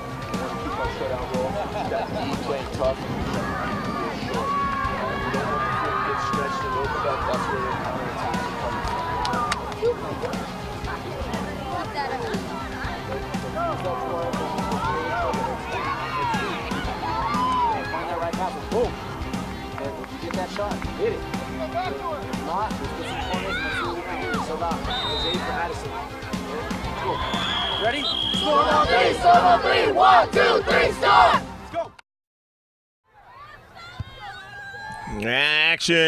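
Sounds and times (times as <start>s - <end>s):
background music: 0.0s - 32.0s
people talking: 0.5s - 18.9s, 35.1s - 36.0s
boys shouting a team cheer: 3.3s - 9.7s, 14.3s - 18.1s, 23.0s - 24.5s, 28.4s - 31.4s.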